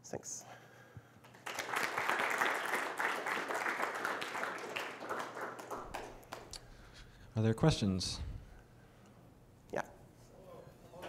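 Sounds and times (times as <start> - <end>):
audience applauding: 1.2 - 6.6.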